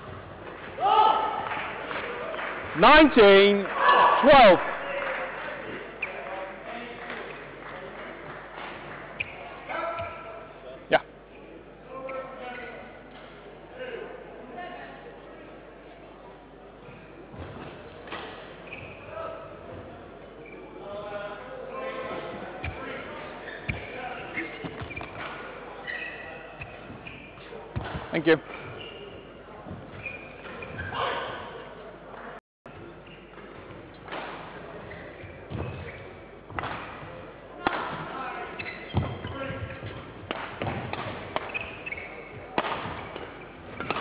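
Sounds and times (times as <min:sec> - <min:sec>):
racket striking shuttlecock: 0:39.8 - 0:44.0.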